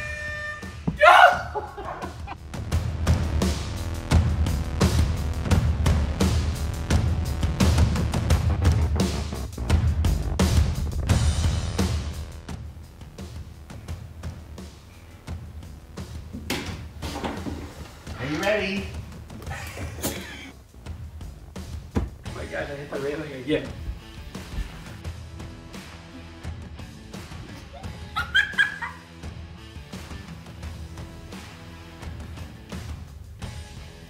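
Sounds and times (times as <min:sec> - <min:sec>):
background music with steady beat: 0:00.0 - 0:34.0
high-pitched yelps: 0:01.0 - 0:02.2, 0:27.6 - 0:29.0.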